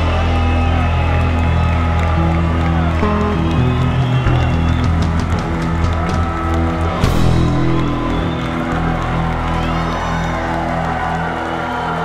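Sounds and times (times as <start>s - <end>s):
electric guitar and bass chord: 0.0s - 5.2s
crowd cheering: 0.0s - 12.0s.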